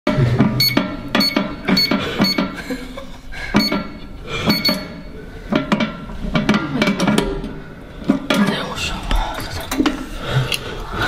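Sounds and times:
keypad beeping: 0.6s - 2.6s, 3.6s - 5.1s.

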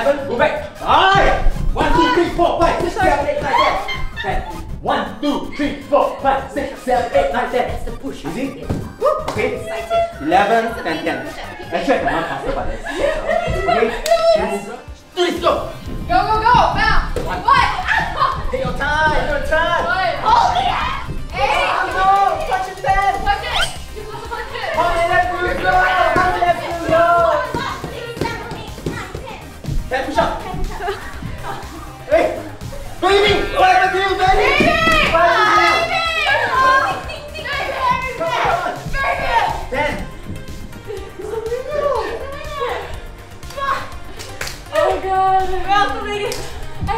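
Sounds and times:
women shouting and cheering: 1.0s - 4.6s, 8.6s - 12.4s, 13.0s - 14.8s, 16.1s - 29.7s, 30.4s - 46.9s
women laughing and exclaiming: 3.2s - 4.7s, 9.0s - 14.8s, 16.7s - 19.2s, 20.1s - 28.4s, 30.4s - 39.7s, 40.6s - 44.0s.

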